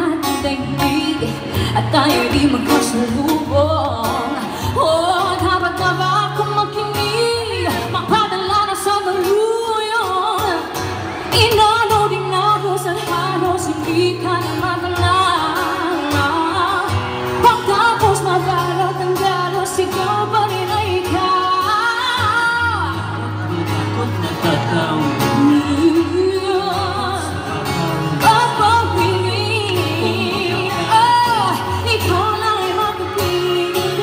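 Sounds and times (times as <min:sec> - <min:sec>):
acoustic guitar: 0:00.0 - 0:34.0
woman singing pop ballad: 0:00.0 - 0:34.0.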